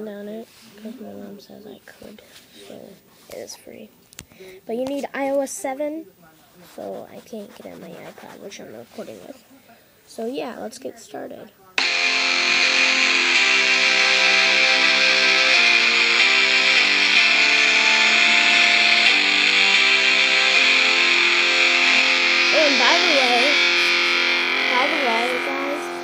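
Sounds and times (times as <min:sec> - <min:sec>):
person speaking: 0:06.6 - 0:09.5, 0:20.5 - 0:26.0
guitar chords through phone speaker: 0:11.8 - 0:26.0.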